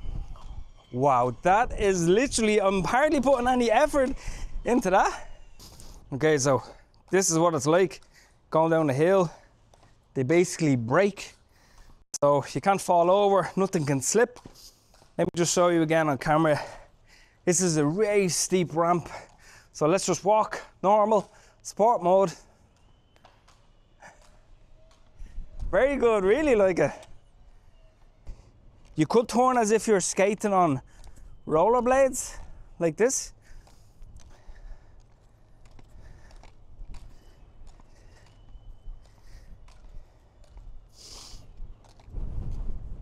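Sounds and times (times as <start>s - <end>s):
motorised shoes rolling on asphalt: 0.0s - 43.0s
faint breath: 4.2s - 4.6s, 8.0s - 8.4s, 11.4s - 12.0s, 16.6s - 17.4s, 19.0s - 19.8s, 21.3s - 21.6s, 33.4s - 41.6s.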